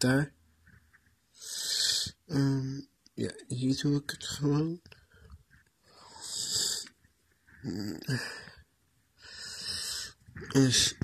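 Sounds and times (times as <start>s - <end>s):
heavy rasping breaths: 7.6s - 10.9s.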